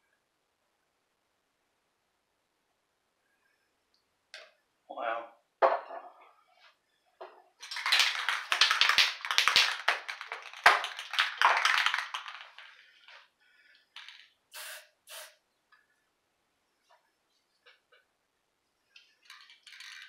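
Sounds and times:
short hisses: 14.5 - 15.4.

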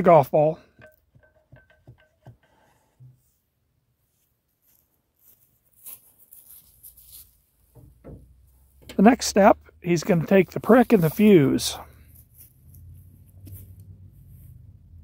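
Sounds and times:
wooden rammer knocks with metallic ring: 0.6 - 3.2, 7.7 - 9.0
faint rustles: 10.6 - 15.0.

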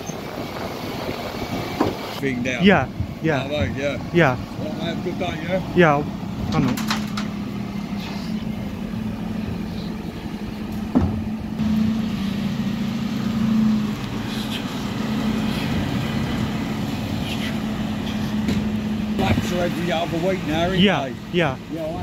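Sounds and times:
refuse lorry engine hum: 0.0 - 22.0.

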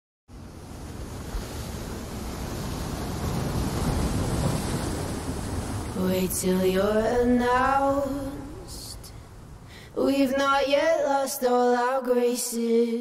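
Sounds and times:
wind rumbling on microphone: 0.3 - 10.8
surf washing up beach: 0.3 - 11.0.

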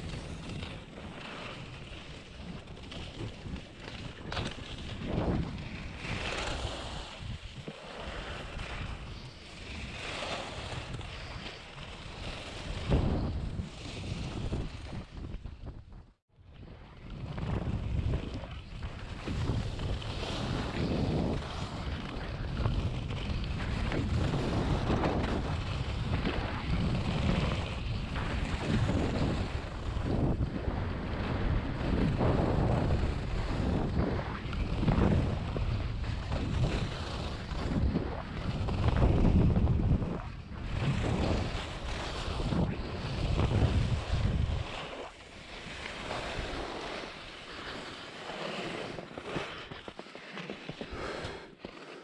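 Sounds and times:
skis scraping snow: 0.0 - 15.8, 16.8 - 52.0
wind on microphone: 0.0 - 49.9.

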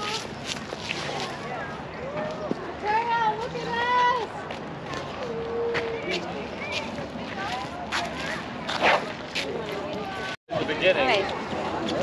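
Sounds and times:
children and adults talking: 0.0 - 12.0
steady outdoor noise: 0.0 - 12.0.

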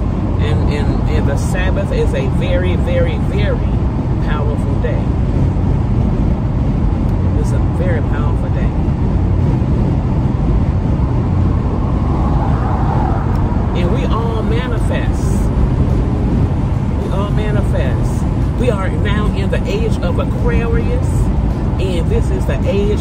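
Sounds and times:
car road and engine noise: 0.0 - 23.0.

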